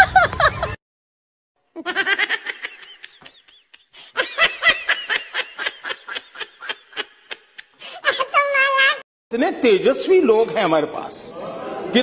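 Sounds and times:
person laughing: 0.0s - 0.8s, 1.8s - 8.5s.

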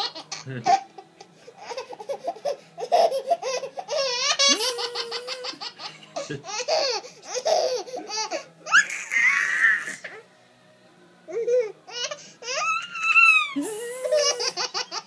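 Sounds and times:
baby laughing: 0.0s - 1.0s, 1.6s - 10.0s, 11.3s - 15.0s.

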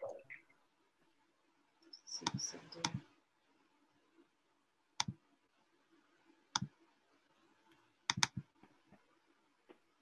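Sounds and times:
computer mouse clicking: 2.2s - 3.0s, 5.0s - 5.2s, 6.5s - 6.7s, 7.7s - 8.5s.

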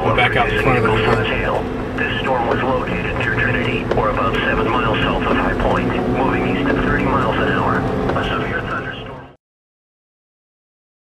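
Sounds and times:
person's voice: 0.0s - 9.4s
steady low hum: 0.0s - 9.4s.

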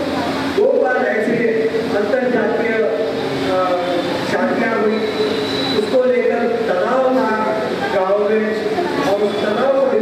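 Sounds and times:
man speaking at a microphone: 0.6s - 10.0s
thin high whistle: 5.0s - 6.0s.

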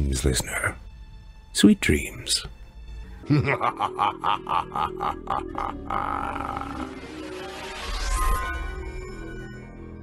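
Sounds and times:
background music: 0.0s - 10.0s
man laughing sinisterly: 3.2s - 7.1s.

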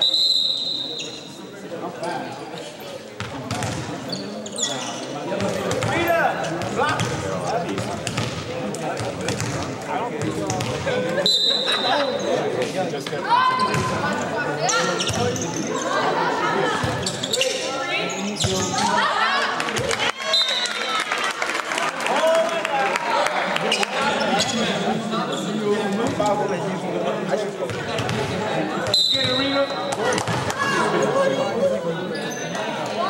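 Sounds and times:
referee's whistle blast: 0.0s - 1.2s, 28.9s - 29.8s
voices calling out in echoing gym: 0.0s - 33.0s.

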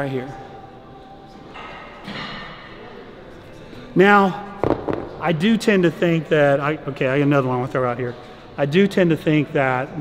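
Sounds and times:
gym room noise: 0.0s - 10.0s.

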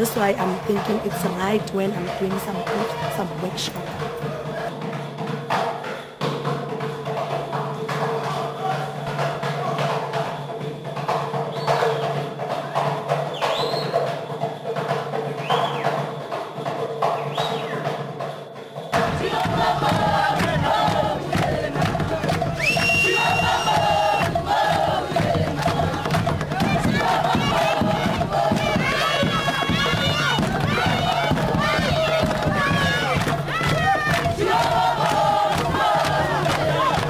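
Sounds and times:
dance music: 0.0s - 4.2s
crowd cheering and shouting: 19.0s - 37.0s.

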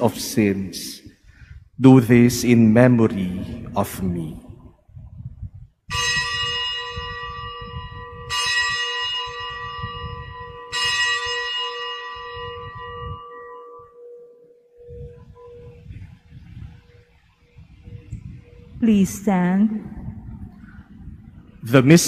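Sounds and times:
bell strokes ringing: 5.9s - 15.8s.

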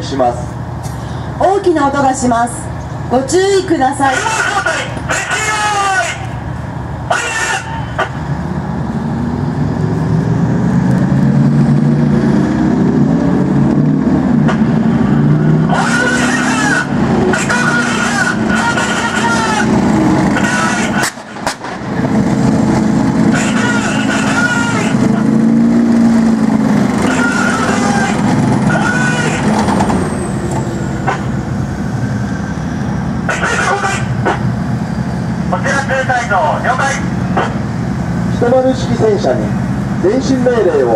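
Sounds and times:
tank diesel engines revving: 0.0s - 40.9s.

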